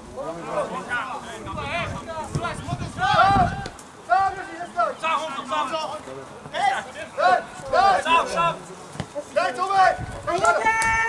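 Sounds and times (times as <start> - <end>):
footballers shouting calls: 0.0 - 11.0.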